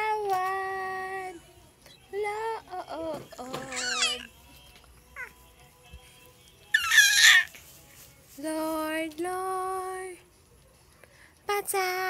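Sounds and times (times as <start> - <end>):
baby squealing: 3.7 - 4.3, 6.8 - 7.6.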